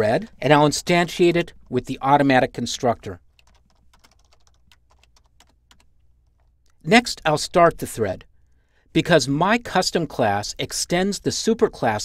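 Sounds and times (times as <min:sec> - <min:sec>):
computer keyboard typing: 0:03.3 - 0:06.5.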